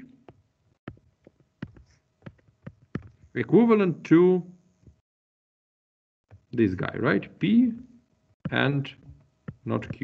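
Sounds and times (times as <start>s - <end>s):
stylus tapping on tablet screen: 0.2s - 3.3s, 8.4s - 10.0s.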